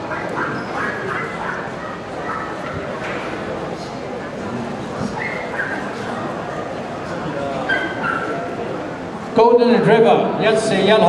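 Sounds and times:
dogs whining: 0.0 - 2.8, 5.0 - 6.1, 7.6 - 8.5
dogs yipping: 0.0 - 2.9, 5.1 - 6.1, 7.6 - 8.5
murmur of voices: 0.0 - 11.0.

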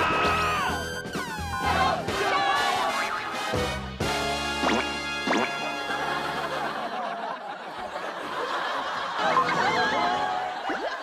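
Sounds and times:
people laughing: 5.5 - 11.0.

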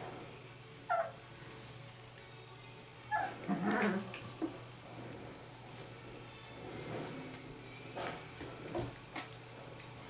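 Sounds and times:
puppy growling and barking: 0.9 - 1.2, 3.1 - 4.2
puppy yelping: 0.9 - 1.2, 3.1 - 4.1.

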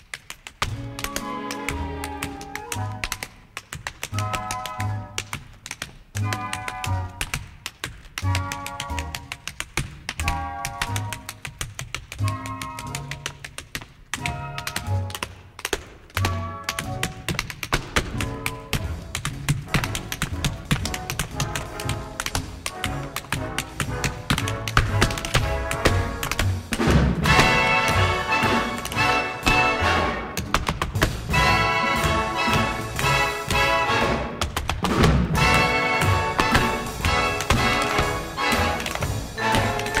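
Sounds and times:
rapid tap-dance taps: 0.0 - 40.0
orchestra playing dance music: 0.1 - 40.0.

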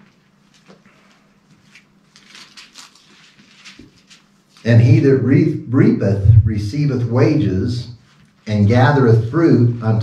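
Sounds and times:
low steady hum: 4.4 - 10.0.

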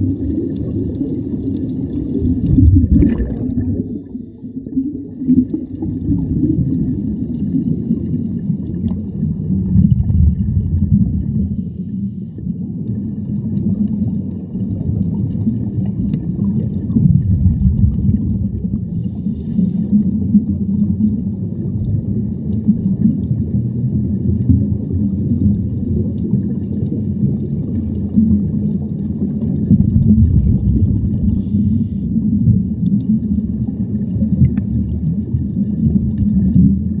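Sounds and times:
divers' exhaled bubbles: 0.0 - 37.0
low underwater rumble: 0.0 - 37.0.

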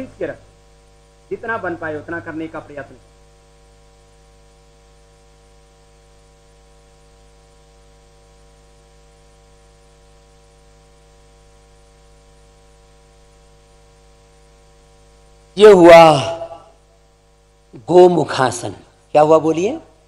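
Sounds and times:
faint electrical mains hum: 0.0 - 20.0.

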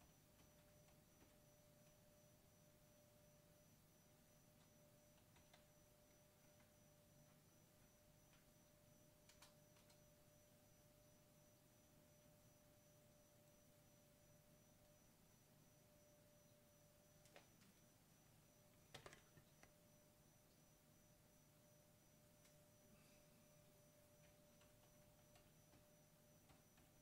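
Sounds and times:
faint steady pure tone: 0.0 - 27.0
tiny clicks: 9.3 - 10.0.

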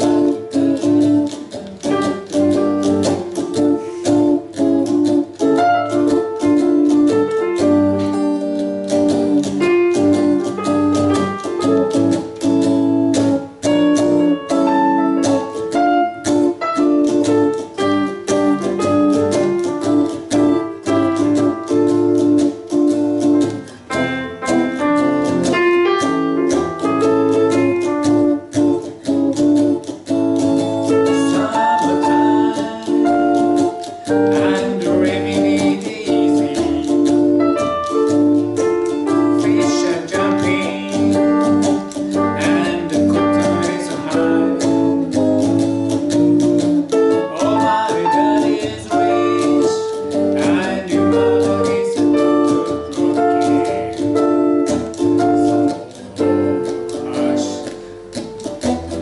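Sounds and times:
electric guitar playing: 0.0 - 59.0
keyboard piano playing: 0.0 - 59.0.

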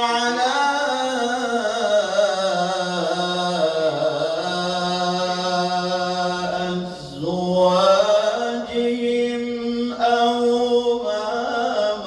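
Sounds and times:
man chanting through a microphone: 0.0 - 12.0.

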